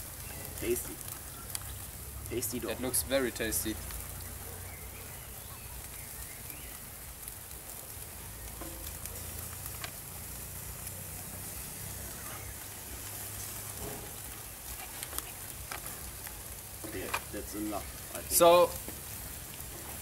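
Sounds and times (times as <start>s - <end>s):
meat sizzling on a grill: 0.0s - 20.0s.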